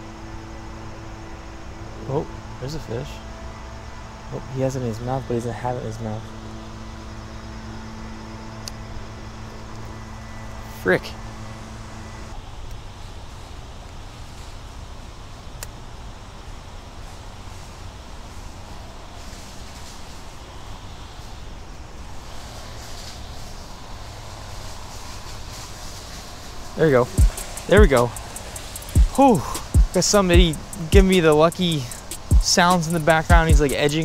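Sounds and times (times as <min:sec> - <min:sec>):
low steady rumble: 0:00.0 - 0:22.8
string trimmer running: 0:06.4 - 0:12.4, 0:27.1 - 0:34.0.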